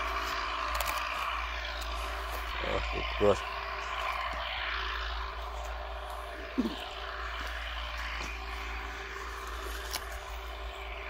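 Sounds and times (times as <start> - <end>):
distant engine drone: 0.0 - 11.0.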